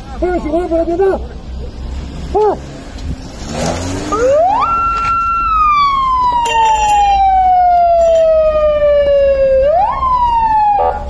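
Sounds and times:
loud siren: 4.1s - 11.0s.

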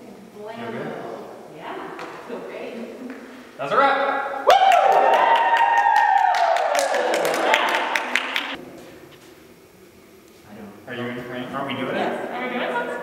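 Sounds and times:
small group cheering and clapping: 4.4s - 8.6s.

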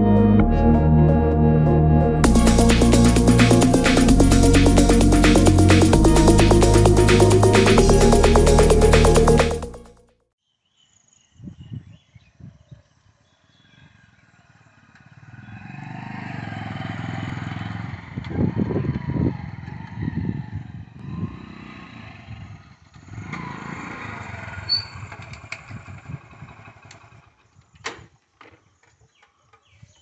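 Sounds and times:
motorcycle engine revving past: 14.6s - 27.3s.

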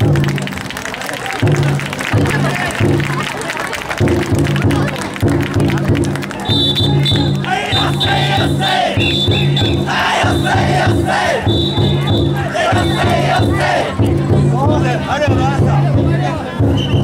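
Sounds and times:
big drum beating steady rhythm: 1.4s - 17.0s
crowd shouting chants: 6.9s - 16.6s.

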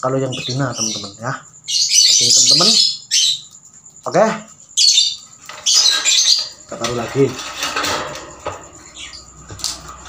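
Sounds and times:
lovebirds squawking: 0.0s - 9.4s.

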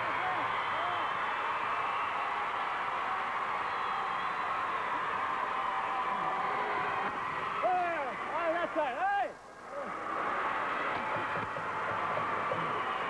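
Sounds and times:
arena crowd din: 0.0s - 13.0s.

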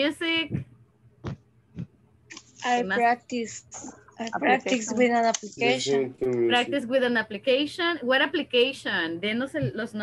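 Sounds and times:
voice on a video call: 0.0s - 10.0s.

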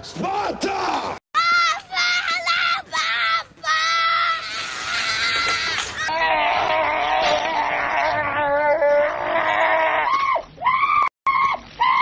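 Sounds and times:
shrill screaming: 1.4s - 8.4s, 9.1s - 12.0s.

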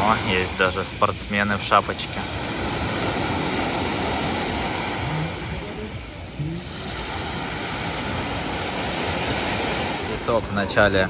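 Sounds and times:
surf washing up a pebbly beach: 0.0s - 10.8s.

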